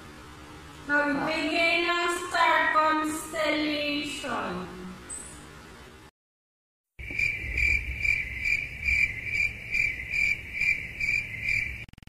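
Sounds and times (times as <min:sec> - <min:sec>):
cricket chirping: 0:07.0 - 0:12.0.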